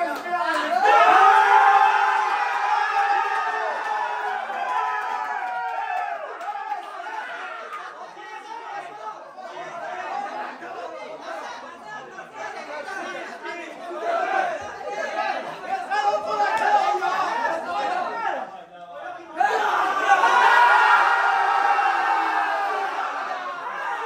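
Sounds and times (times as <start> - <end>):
men talking and shouting: 0.0 - 24.0.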